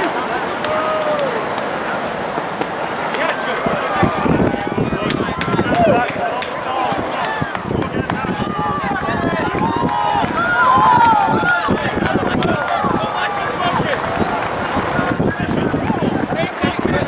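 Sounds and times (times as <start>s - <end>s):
crowd talking and calling out: 0.0s - 17.0s.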